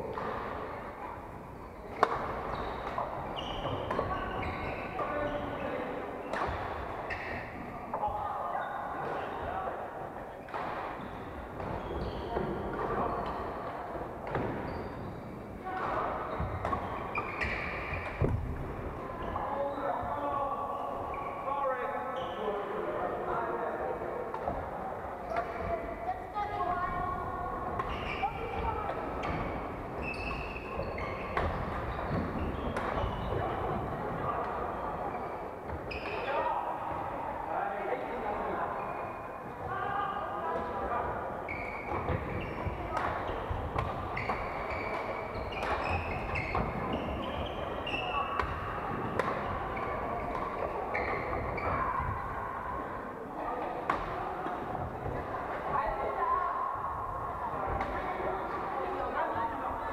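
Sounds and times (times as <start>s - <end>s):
rackets hitting shuttlecocks: 1.9s - 4.3s, 30.3s - 33.8s, 41.9s - 46.9s, 47.9s - 49.6s.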